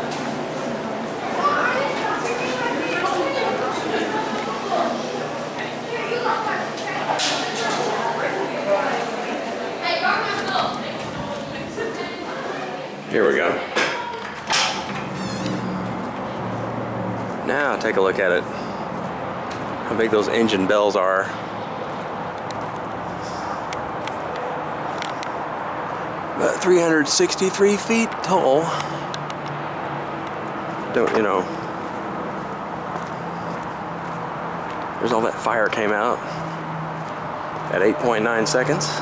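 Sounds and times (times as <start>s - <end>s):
low even outdoor hum: 0.0s - 39.0s.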